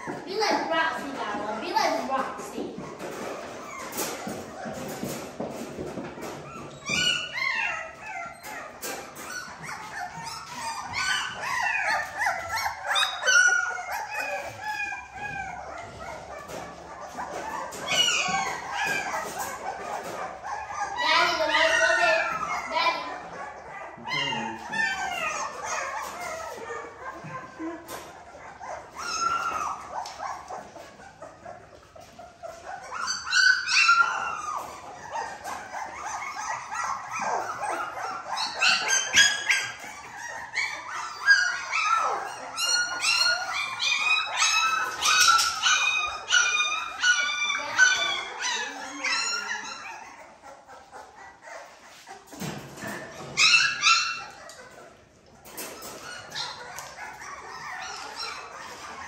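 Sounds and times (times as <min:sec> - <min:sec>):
puppies whining and yelping: 0:00.0 - 0:59.0.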